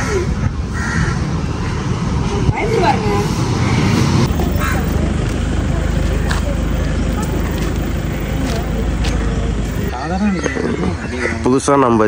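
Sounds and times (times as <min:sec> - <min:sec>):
traffic rumble: 0:00.0 - 0:11.5
faint voices: 0:02.2 - 0:11.4.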